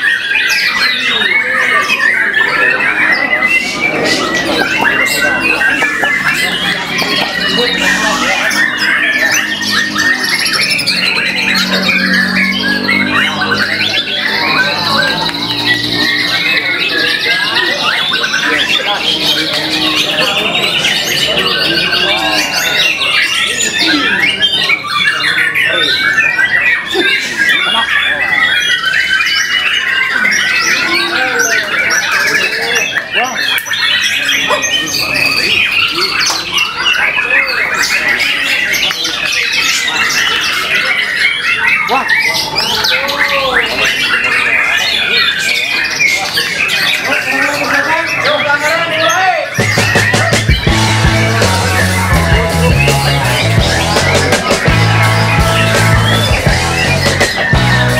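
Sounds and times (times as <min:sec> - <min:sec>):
bird singing: 0:00.0 - 0:57.9.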